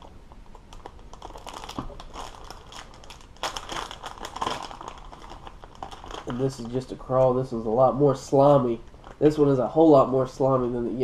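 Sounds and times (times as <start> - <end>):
plastic package crinkling: 0.5 - 7.2, 8.8 - 9.5.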